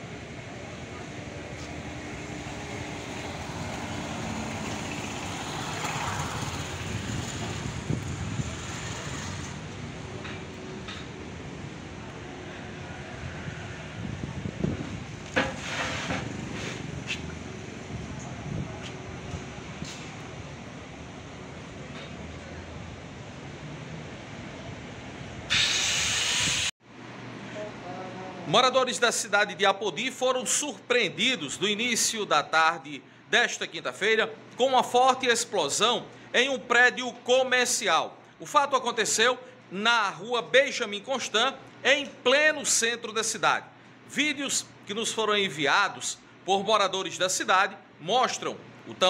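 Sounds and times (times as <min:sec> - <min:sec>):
road traffic hum: 0:00.0 - 0:27.8
street ambience: 0:00.0 - 0:28.5
vehicle passing close: 0:00.2 - 0:23.0
loud even hiss: 0:25.4 - 0:26.8.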